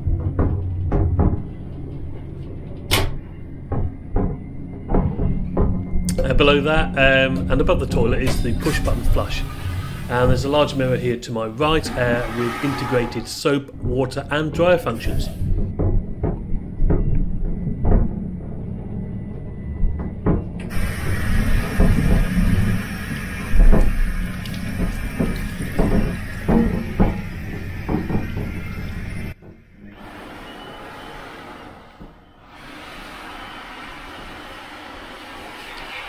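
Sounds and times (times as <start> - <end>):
hand dryer unit hissing: 6.2 - 15.6, 20.6 - 36.0.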